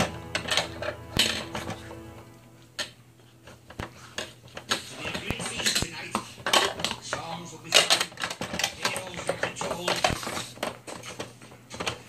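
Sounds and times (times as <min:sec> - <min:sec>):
plastic toy clacking and rattling: 0:04.2 - 0:12.0.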